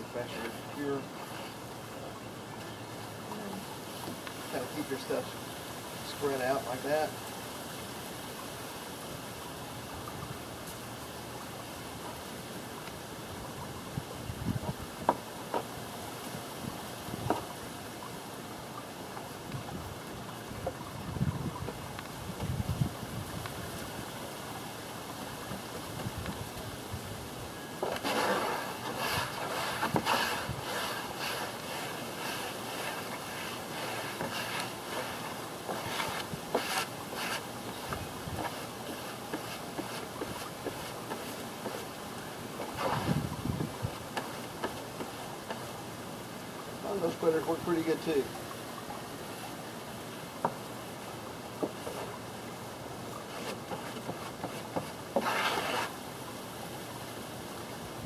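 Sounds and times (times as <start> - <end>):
steady outdoor hiss: 0.0 - 58.0
wind gusts on microphone: 13.3 - 15.1, 19.4 - 24.1, 25.5 - 27.6, 42.7 - 44.1
paintbrush strokes: 27.8 - 42.0, 53.2 - 56.0.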